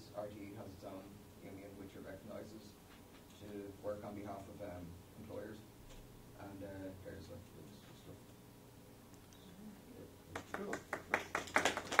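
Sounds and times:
people clapping: 0:10.3 - 0:12.0.

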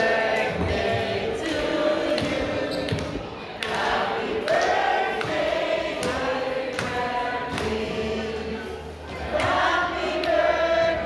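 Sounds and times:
group of people singing: 0:00.0 - 0:11.0.

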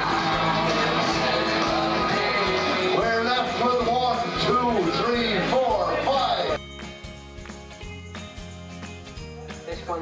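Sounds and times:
backing music: 0:00.0 - 0:10.0.

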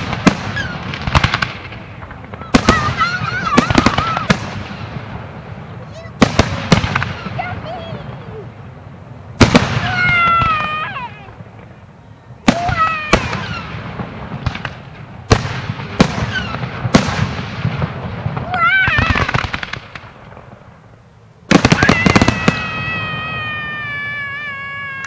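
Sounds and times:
fireworks bangs: 0:00.0 - 0:25.0.

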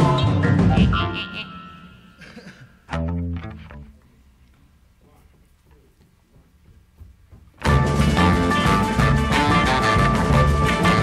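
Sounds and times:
music: 0:00.0 - 0:04.0, 0:07.6 - 0:11.0
plucked guitar chord: 0:02.9 - 0:04.0.

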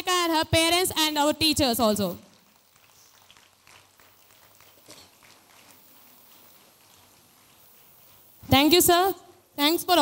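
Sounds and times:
low hiss: 0:00.1 - 0:10.0
scattered hand-clapping: 0:02.3 - 0:07.8.

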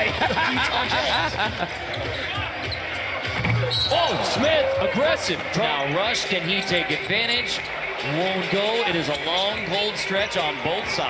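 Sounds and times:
crowd murmur and voices: 0:00.0 - 0:11.0.

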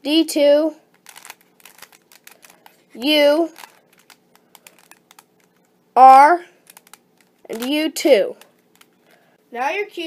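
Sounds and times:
puzzle cube clicking as turned: 0:00.9 - 0:05.7, 0:06.6 - 0:09.0.

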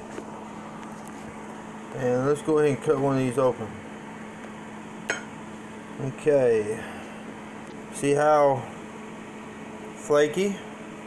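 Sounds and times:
low background hum: 0:00.0 - 0:11.0
fork clinking on plate: 0:05.1 - 0:05.3.

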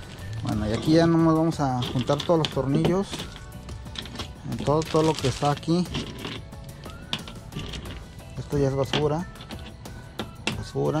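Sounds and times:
background music: 0:00.0 - 0:11.0
screws clinking: 0:00.6 - 0:11.0.

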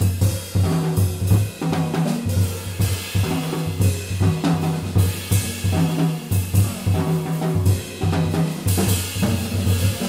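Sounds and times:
snare hits and cymbals: 0:00.0 - 0:10.0.

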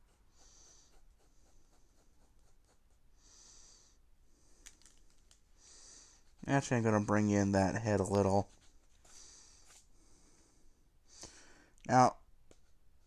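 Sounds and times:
pencil sketching on paper: 0:00.0 - 0:03.2, 0:07.9 - 0:09.8.

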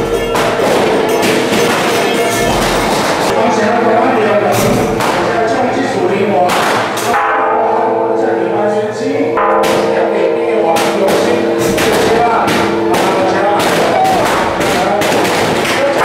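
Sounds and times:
crowd voices: 0:00.0 - 0:16.0
held pitched notes: 0:00.0 - 0:16.0
cymbals and gongs crashing: 0:09.4 - 0:16.0
drum strokes: 0:10.8 - 0:15.9.

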